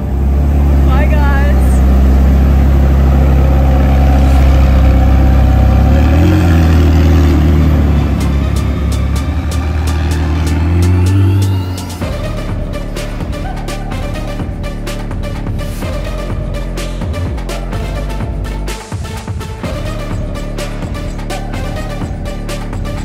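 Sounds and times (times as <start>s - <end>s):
car engine deep drone: 0.0s - 23.0s.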